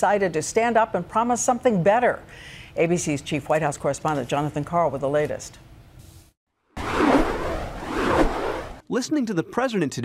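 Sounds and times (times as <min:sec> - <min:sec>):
rushing swoosh: 0:06.8 - 0:08.8.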